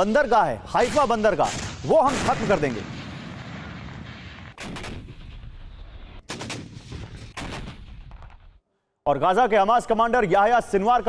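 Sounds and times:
gunfire reports: 0.8s - 5.4s, 6.2s - 8.6s
explosions rumble: 0.9s - 8.6s.

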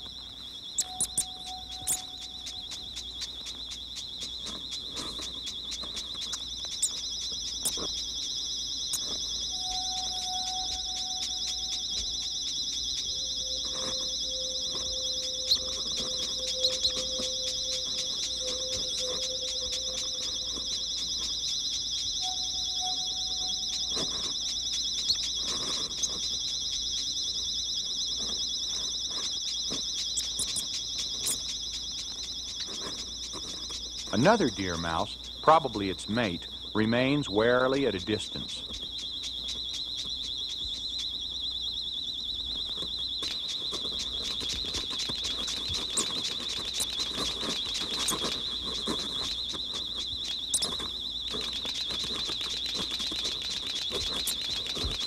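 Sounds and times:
high-pitched trills: 0.0s - 41.2s
faint ticks: 0.0s - 55.0s.

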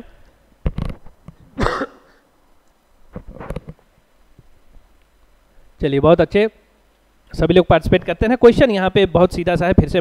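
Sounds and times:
man coughing: 1.6s - 2.2s.

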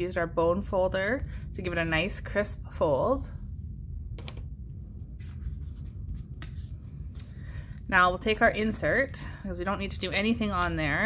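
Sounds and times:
steady low hum: 0.0s - 11.0s
paper rustling: 5.2s - 7.8s.

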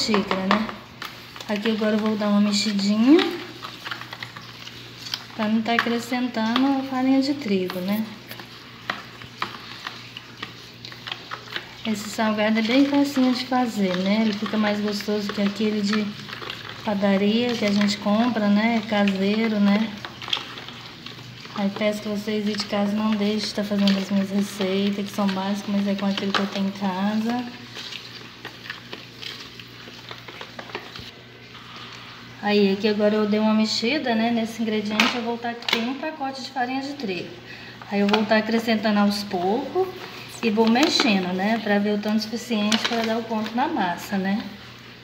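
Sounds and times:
utensil tapping and scraping bowl: 0.0s - 29.6s
liquid swishing: 7.5s - 32.4s.

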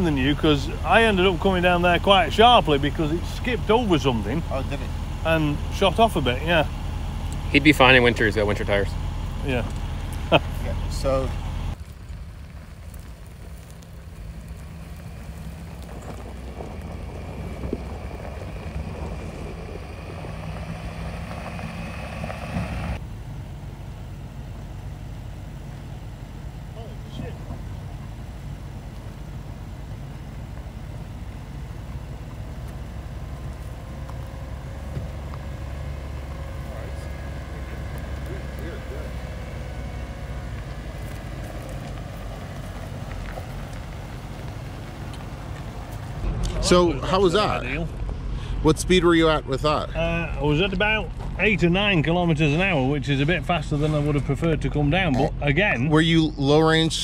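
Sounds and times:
car engine running low: 0.0s - 57.0s.

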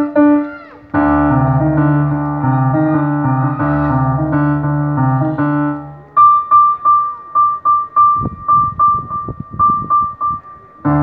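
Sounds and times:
electronic keyboard piano notes: 0.0s - 11.0s.

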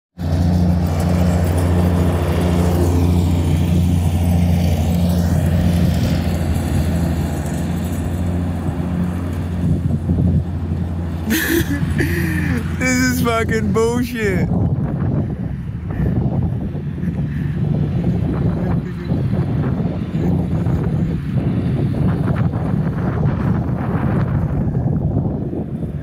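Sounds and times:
small engine running steadily: 0.2s - 26.0s.

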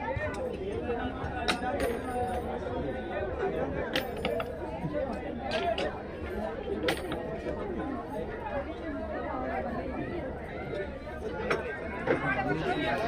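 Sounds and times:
indistinct chatter: 0.0s - 13.0s.

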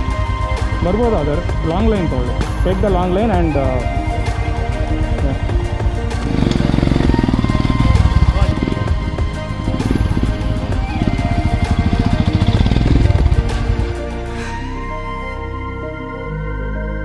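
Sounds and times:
motorcycle engines pulsing: 0.0s - 14.3s
background music: 0.0s - 17.0s.

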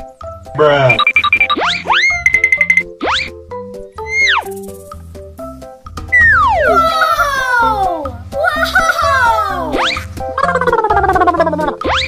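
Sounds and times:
cartoon-style plucky music: 0.5s - 12.0s.

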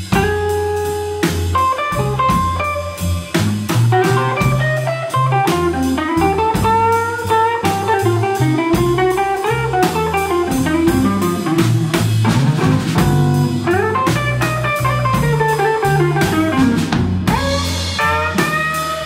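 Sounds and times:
drum kit: 0.0s - 19.0s
electric guitar lead: 0.0s - 19.0s
walking bass: 0.0s - 19.0s.

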